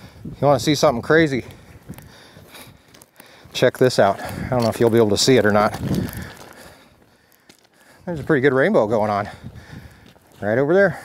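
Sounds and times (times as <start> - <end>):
faint rustle: 1.5 - 8.5.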